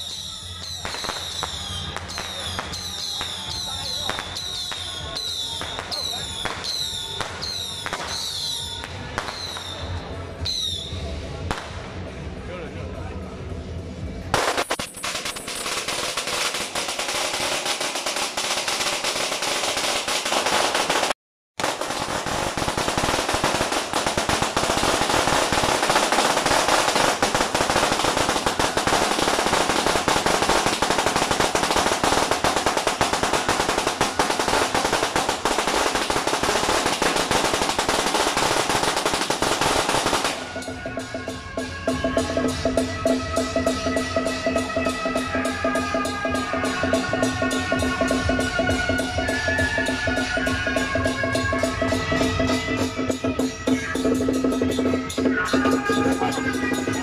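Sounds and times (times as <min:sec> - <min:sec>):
firecrackers crackling: 0:00.0 - 0:12.2, 0:14.3 - 0:41.3.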